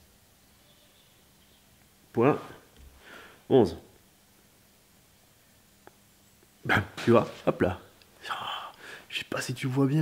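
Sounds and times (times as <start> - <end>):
man speaking: 2.1 - 2.7, 3.5 - 3.9, 6.6 - 10.0.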